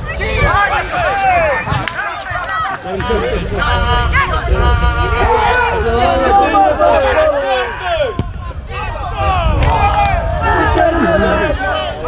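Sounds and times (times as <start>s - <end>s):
voices shouting: 0.0s - 12.0s.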